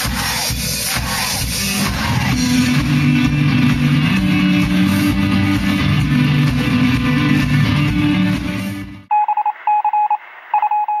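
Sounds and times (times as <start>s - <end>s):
short electronic beeps: 9.1s - 11.0s.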